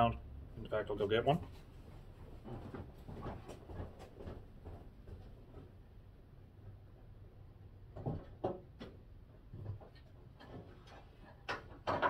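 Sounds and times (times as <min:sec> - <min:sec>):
person shuffling about: 0:01.3 - 0:05.7.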